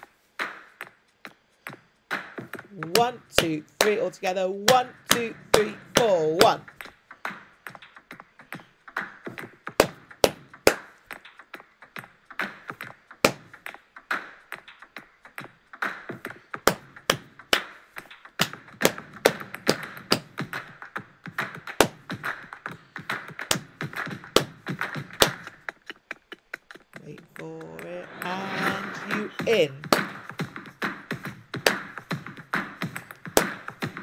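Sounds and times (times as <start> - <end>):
hand claps: 2.1 - 4.1, 4.7 - 11.4, 12.4 - 14.8, 15.8 - 28.0, 29.4 - 34.0
percussion hits: 21.4 - 34.0.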